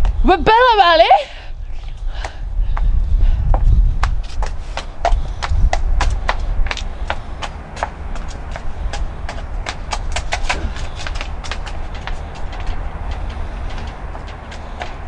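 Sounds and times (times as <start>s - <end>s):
wind rumble on microphone: 0.0s - 15.0s
footsteps clicking on brick: 2.1s - 15.0s.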